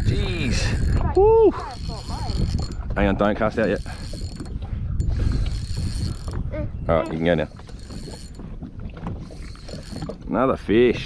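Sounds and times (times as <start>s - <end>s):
fishing reel clicking and whirring: 0.0s - 6.4s, 7.0s - 8.4s, 9.2s - 10.3s.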